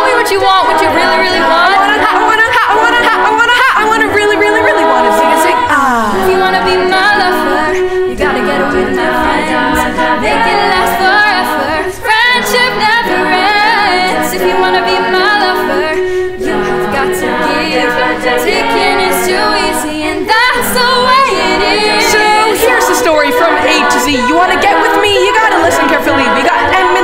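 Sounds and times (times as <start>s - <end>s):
a cappella group singing: 0.0s - 27.0s.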